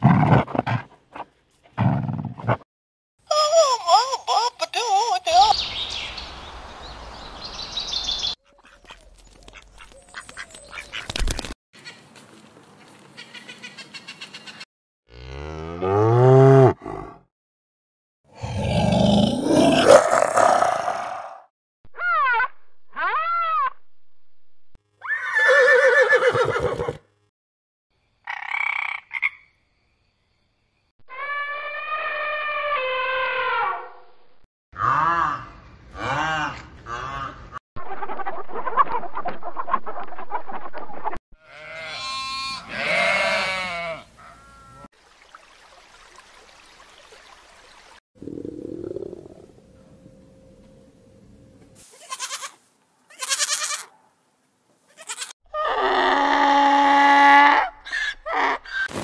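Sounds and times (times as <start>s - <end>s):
animal calls arching in pitch: 31.1s - 34.0s, 55.2s - 58.9s
steady-pitched animal call: 55.0s - 58.9s.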